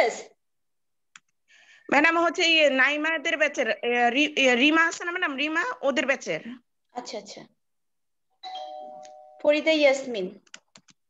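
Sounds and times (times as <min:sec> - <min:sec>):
two-tone chime: 0:08.4 - 0:09.5.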